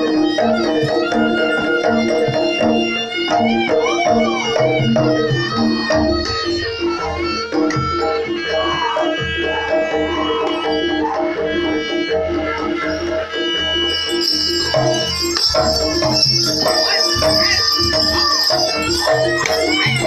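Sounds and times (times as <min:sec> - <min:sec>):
hand drum beats: 0:00.0 - 0:11.5, 0:14.4 - 0:20.0
high reedy melody: 0:00.0 - 0:20.0
struck metal instruments melody: 0:00.0 - 0:20.0
bells jingling: 0:12.9 - 0:20.0.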